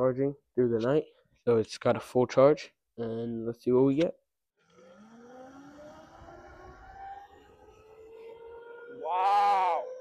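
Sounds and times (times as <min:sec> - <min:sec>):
electric motor whining: 0:04.6 - 0:10.0
road rumble: 0:04.6 - 0:10.0
wind: 0:04.7 - 0:10.0.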